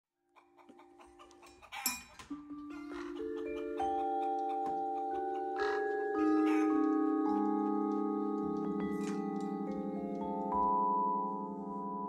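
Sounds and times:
vibraphone notes ringing: 0:01.8 - 0:10.7.

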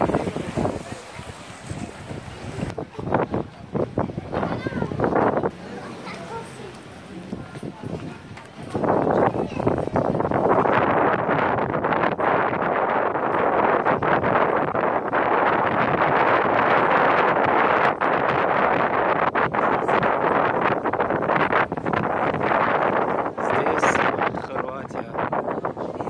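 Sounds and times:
wind on microphone: 0:00.0 - 0:26.0.

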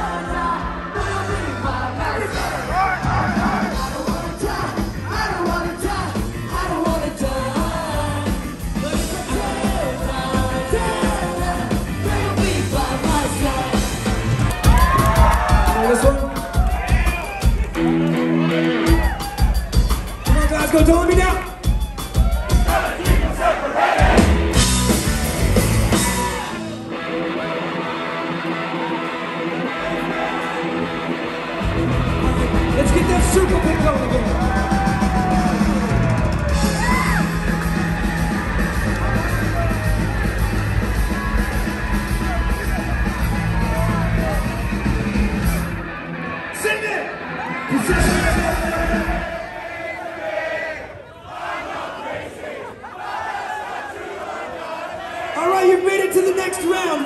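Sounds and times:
ska punk band playing: 0:00.0 - 0:50.7
crowd shouting and chanting: 0:00.0 - 0:57.0
electric guitar playing alone: 0:24.3 - 0:35.0
loud voice: 0:55.4 - 0:57.0.

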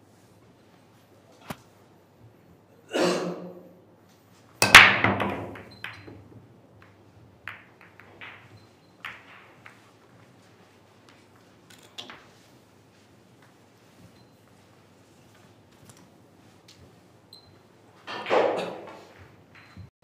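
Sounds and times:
pool balls clattering on break: 0:04.6 - 0:10.3
pool balls clicking: 0:04.6 - 0:12.5, 0:18.0 - 0:19.9.

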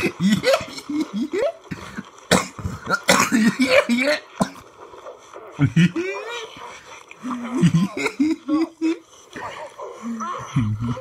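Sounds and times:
person laughing: 0:05.6 - 0:11.0.

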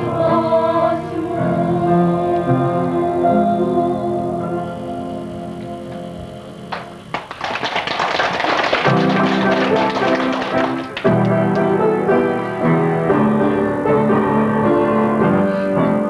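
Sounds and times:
upright piano chords: 0:00.0 - 0:16.0
people clapping: 0:06.7 - 0:11.9.

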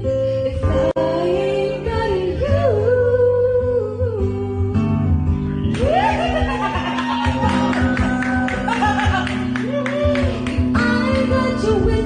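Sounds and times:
strummed acoustic guitar: 0:03.7 - 0:12.0.

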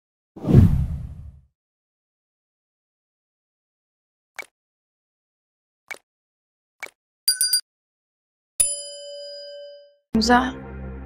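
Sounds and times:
deep whoosh: 0:00.4 - 0:01.4.

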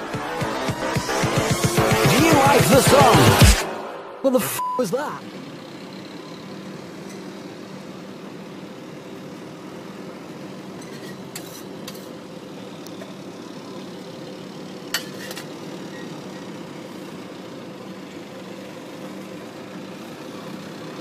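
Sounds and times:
steady motor hum: 0:05.0 - 0:21.0.

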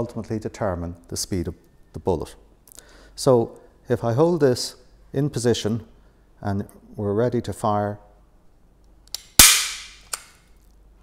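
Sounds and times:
staple gun snap: 0:09.1 - 0:10.4.

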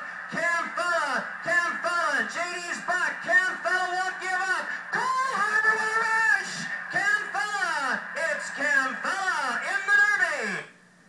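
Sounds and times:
excited race announcer calling: 0:00.0 - 0:10.7.

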